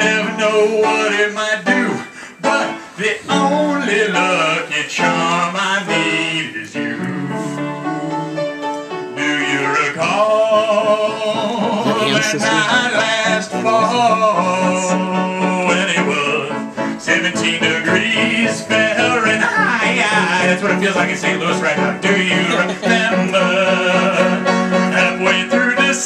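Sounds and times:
man singing: 0.0 - 26.0
upright piano: 0.0 - 26.0.

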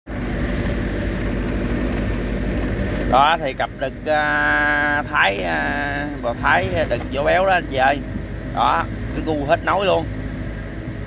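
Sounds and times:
engine humming: 0.1 - 11.0.

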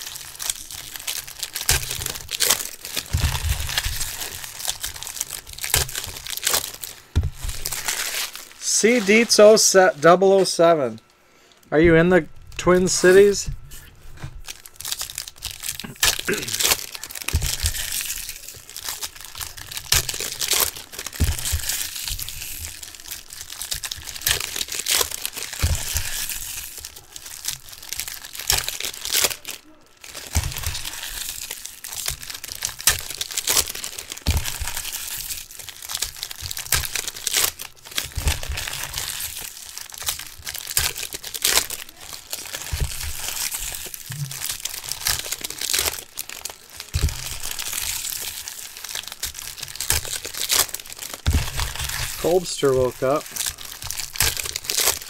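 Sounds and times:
foil wrappers tearing and crinkling: 0.0 - 11.2, 11.9 - 55.0.

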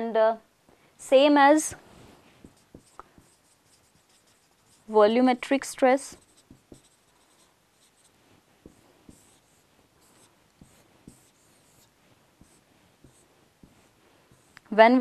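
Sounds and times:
marker squeaking on whiteboard: 2.4 - 4.9, 6.1 - 14.7.

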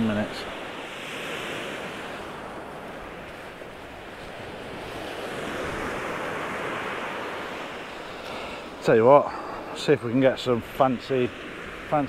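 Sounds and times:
surf breaking on shore: 0.0 - 12.0.

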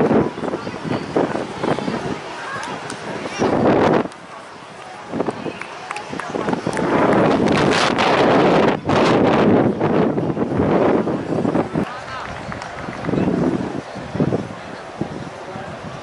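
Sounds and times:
people talking: 0.0 - 16.0
wind noise on microphone: 0.0 - 16.0.

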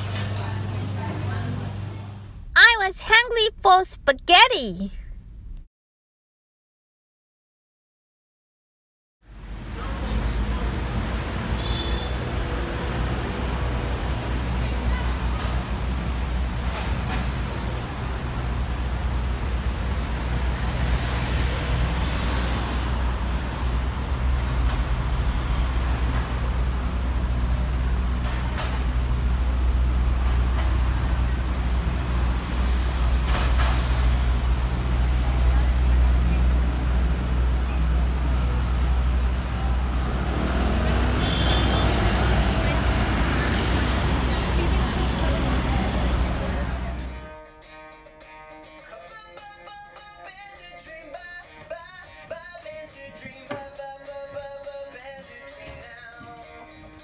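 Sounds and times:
cars passing: 9.3 - 47.2
steady low traffic rumble: 22.8 - 41.2.

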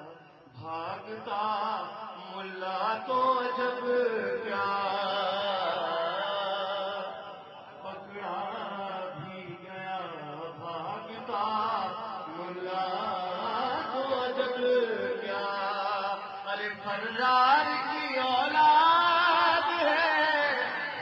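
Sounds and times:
man chanting into a microphone: 0.0 - 21.0.

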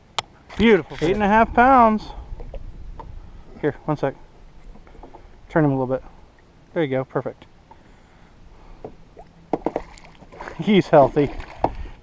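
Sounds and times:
water splashing: 9.1 - 12.0.

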